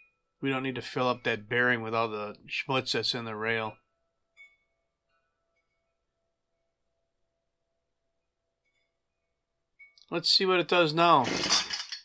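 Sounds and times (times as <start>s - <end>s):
faint ringing metallic clinks: 3.8s - 10.1s.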